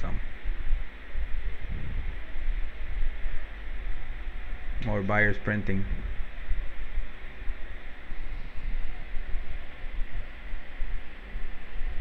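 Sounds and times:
low background rumble and hiss: 0:00.0 - 0:12.0.

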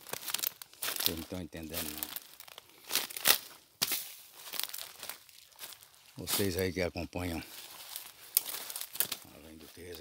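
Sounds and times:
footsteps through dry leaves: 0:00.0 - 0:10.0.

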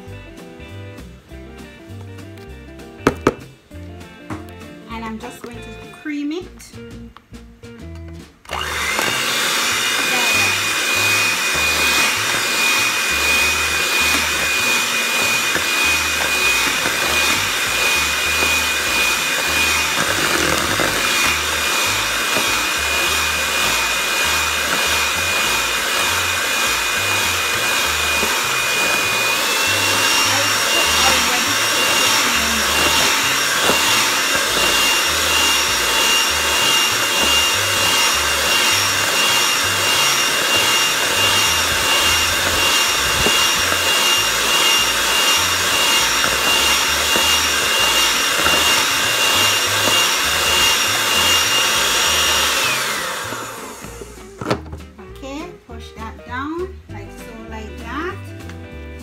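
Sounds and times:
electric hand mixer whining: 0:08.5 - 0:54.8.

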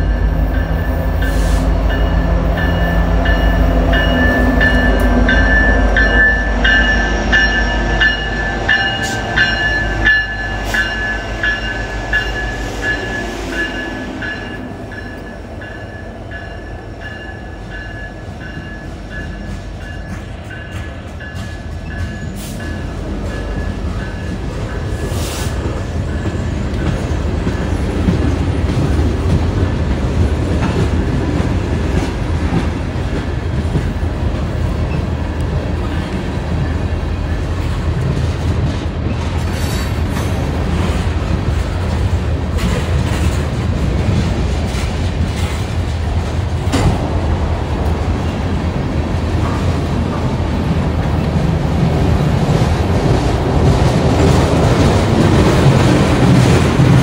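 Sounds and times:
locomotive bell ringing: 0:00.0 - 0:25.1
diesel locomotive engines running: 0:00.0 - 0:57.0
train wheels on rails: 0:00.0 - 0:57.0.

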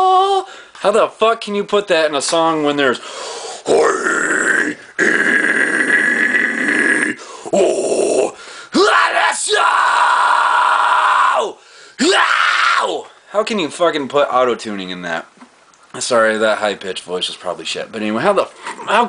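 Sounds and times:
man screaming metal vocals: 0:00.0 - 0:00.5, 0:03.6 - 0:13.0
short breaths: 0:00.5 - 0:00.8, 0:03.0 - 0:03.7, 0:07.2 - 0:07.6, 0:08.4 - 0:08.8, 0:11.6 - 0:12.0.

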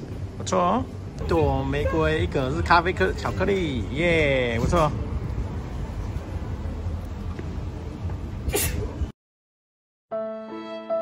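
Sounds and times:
outdoor street noise: 0:00.0 - 0:09.2.

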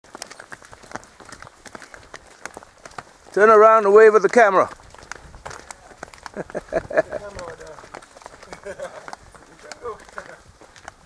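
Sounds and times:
footsteps on stone: 0:00.0 - 0:11.0
hooves on stone: 0:00.0 - 0:11.0.

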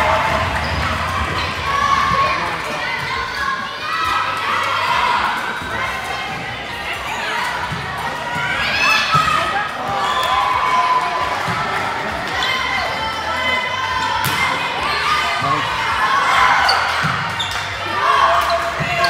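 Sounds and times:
voices calling and chattering: 0:00.0 - 0:19.0
volleyball hits: 0:14.2 - 0:14.8.

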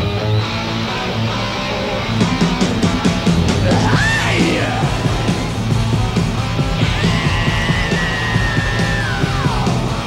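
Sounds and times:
bending guitar note: 0:00.0 - 0:08.0
hard rock band playing: 0:00.0 - 0:10.0.

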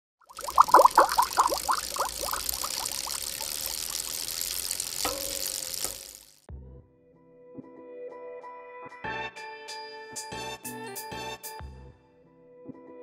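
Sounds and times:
bubbling blips dropping in pitch: 0:00.3 - 0:04.6
splashy hiss: 0:00.3 - 0:06.4.

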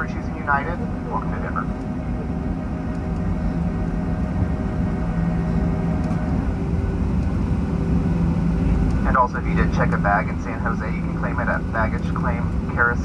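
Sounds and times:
jet engines idling in cabin: 0:00.0 - 0:13.0.

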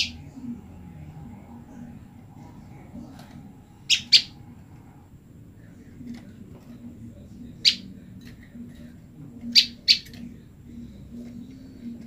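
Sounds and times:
bird sharp high calls: 0:03.8 - 0:04.4.

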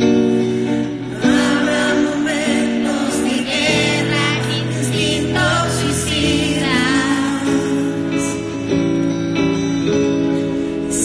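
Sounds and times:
guitar: 0:00.0 - 0:11.0
live band playing slow song: 0:00.0 - 0:11.0.

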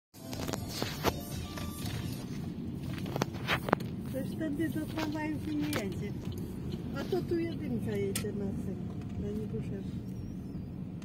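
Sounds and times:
car cabin rumble while driving: 0:00.2 - 0:11.0.

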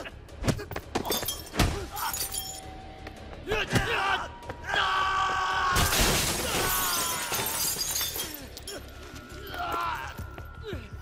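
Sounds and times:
film score music: 0:00.0 - 0:05.8
glass shattering crash: 0:01.1 - 0:02.6, 0:05.8 - 0:08.9
debris rattling down: 0:05.8 - 0:08.8.

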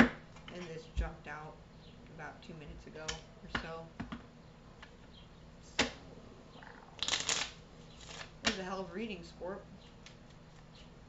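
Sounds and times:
cards shuffling: 0:07.0 - 0:08.4.

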